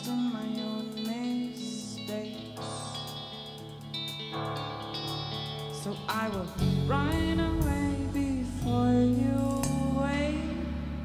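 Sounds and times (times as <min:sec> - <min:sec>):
bass guitar: 0:00.0 - 0:11.0
drums: 0:00.0 - 0:11.0
electric guitar chords: 0:00.0 - 0:11.0.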